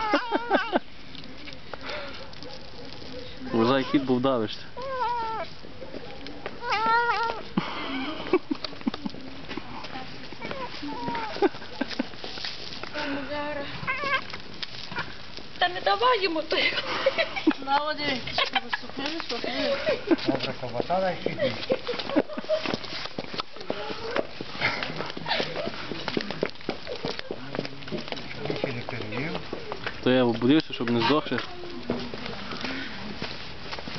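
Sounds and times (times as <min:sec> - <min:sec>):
cat meowing: 0:00.0 - 0:00.7, 0:03.6 - 0:04.1, 0:04.8 - 0:05.5, 0:06.6 - 0:07.4, 0:10.4 - 0:11.4, 0:13.8 - 0:14.3.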